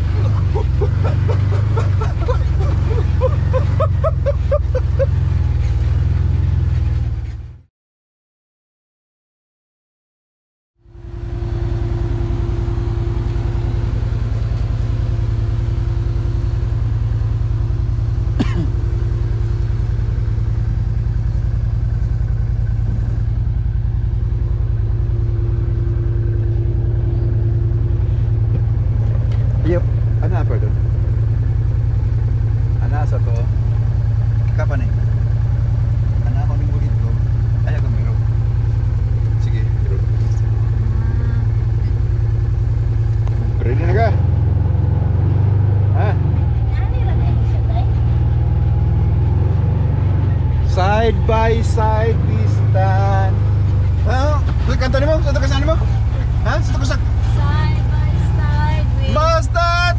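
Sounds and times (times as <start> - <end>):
engine idling: 0.0 - 7.7, 10.8 - 59.9.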